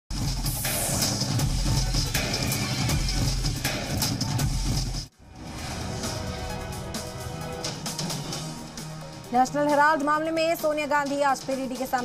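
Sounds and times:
theme music with pulsing bass beat: 0.1s - 12.0s
soft background music: 5.1s - 12.0s.

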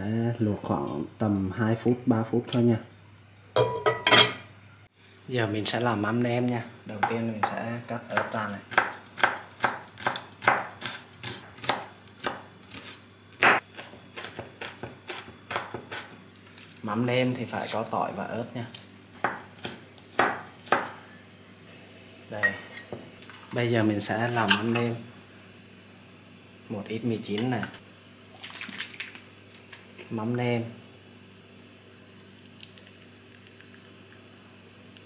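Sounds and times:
kitchenware clinking on ceramic pot: 3.6s - 4.4s
knife chopping on wooden board: 8.2s - 16.1s, 19.2s - 21.0s.

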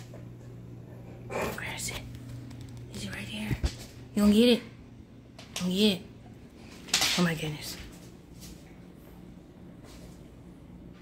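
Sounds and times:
person whispering: 1.3s - 2.2s, 2.9s - 3.6s.

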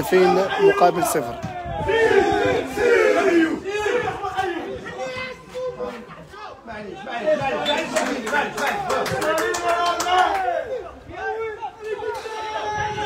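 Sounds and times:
people shouting: 0.0s - 7.4s, 9.1s - 13.0s.

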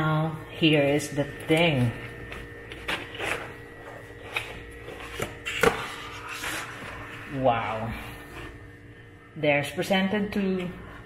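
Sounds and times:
plastic rustling and scraping: 2.0s - 7.2s.

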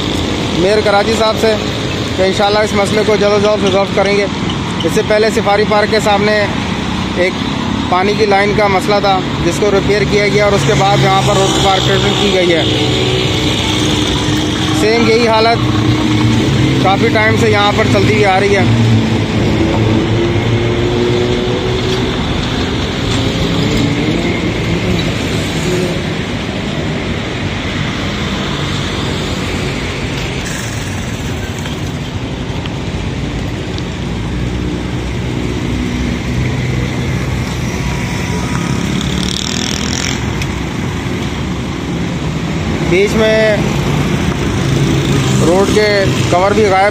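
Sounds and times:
road rumble: 0.0s - 46.9s
vehicle engines passing: 0.0s - 46.9s.

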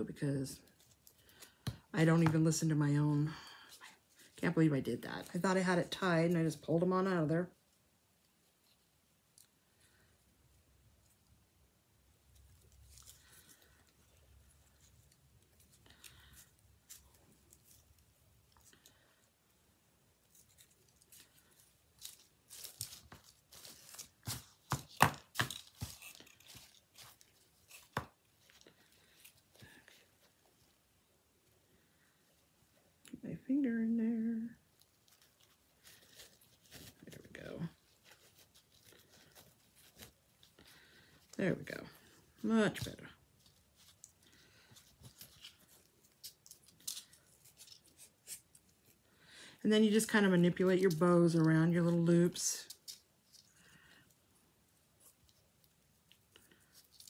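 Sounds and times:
ribbon rustling and crinkling: 0.1s - 33.0s, 33.7s - 57.0s
sharp crinkles and clicks: 42.7s - 49.0s, 55.0s - 57.0s.

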